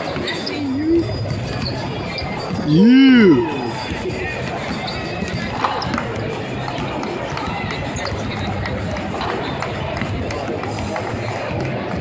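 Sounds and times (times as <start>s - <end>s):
murmur of talk: 0.0s - 12.0s.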